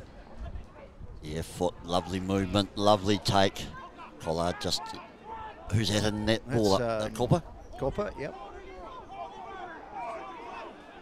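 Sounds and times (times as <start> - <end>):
faint overlapping shouts: 1.8 - 6.6, 7.4 - 11.0.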